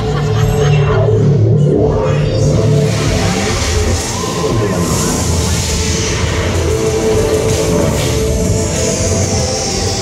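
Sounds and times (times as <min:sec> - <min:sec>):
low bass drone: 0:00.0 - 0:10.0.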